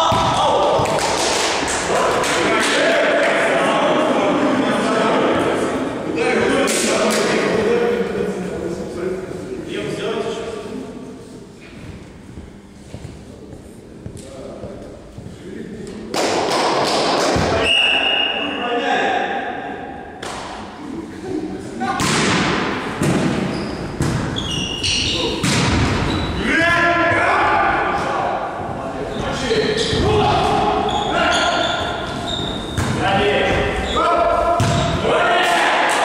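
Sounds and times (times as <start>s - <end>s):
players' voices: 0.0s - 11.6s, 24.2s - 36.0s
volleyball struck by hands: 22.0s - 23.4s, 25.4s - 26.0s, 34.6s - 35.0s.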